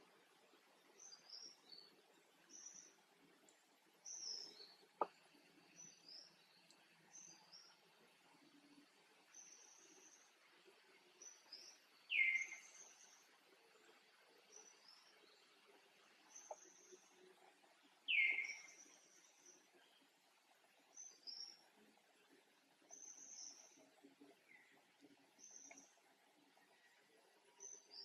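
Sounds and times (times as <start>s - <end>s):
faint bird chirps: 0.0s - 28.0s.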